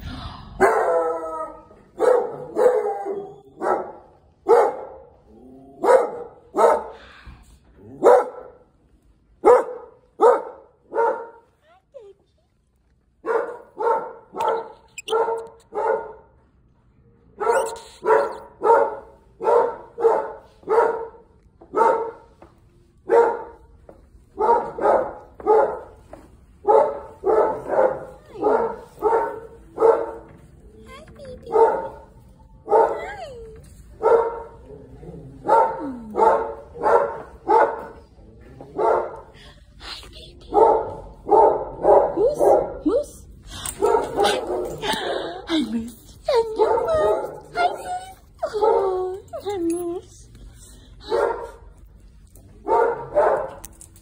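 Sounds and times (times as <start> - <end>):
dogs barking: 0.6 - 5.1, 5.8 - 7.0, 7.9 - 8.6, 9.4 - 11.5, 13.2 - 16.3, 17.4 - 22.4, 23.1 - 23.7, 24.4 - 30.4, 31.4 - 33.3, 34.0 - 34.7, 35.4 - 39.4, 40.5 - 42.9, 43.7 - 45.1, 51.0 - 51.9, 52.6 - 53.8.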